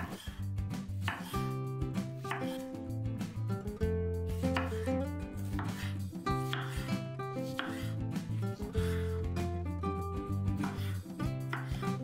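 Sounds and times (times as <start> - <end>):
knife slicing tomatoes on board: 0.0 - 2.9, 4.2 - 9.0, 10.4 - 12.0
background music with held notes: 0.0 - 12.0.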